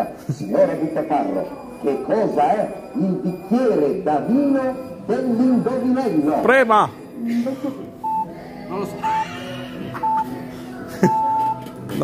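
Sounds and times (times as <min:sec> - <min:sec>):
electronic timer beeping: 0:00.4 - 0:09.4, 0:10.0 - 0:10.3, 0:11.1 - 0:11.6.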